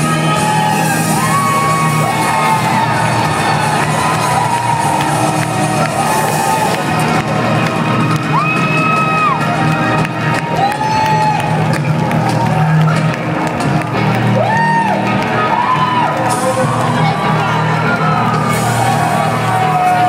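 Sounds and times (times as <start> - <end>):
crowd cheering and whooping: 0.0 - 20.0
live band music: 0.0 - 20.0.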